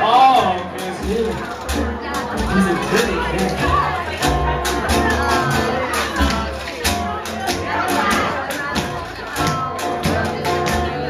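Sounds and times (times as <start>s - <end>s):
bass: 0.0s - 11.0s
guitar: 0.0s - 11.0s
voices over music: 0.0s - 11.0s.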